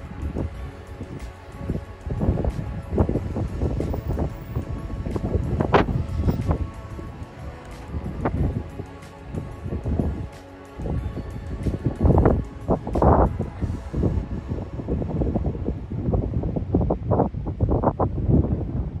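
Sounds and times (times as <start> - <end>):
background music: 0.0 - 17.2
wind buffeting microphone: 0.0 - 19.0.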